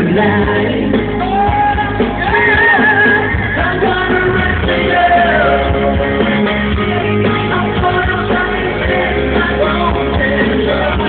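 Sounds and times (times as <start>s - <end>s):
men singing into microphones: 0.0s - 6.2s, 7.0s - 11.0s
amplified band playing: 0.0s - 11.0s.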